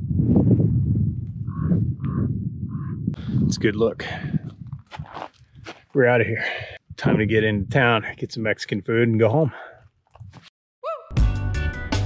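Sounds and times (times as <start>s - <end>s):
wind buffeting microphone: 0.0s - 8.4s.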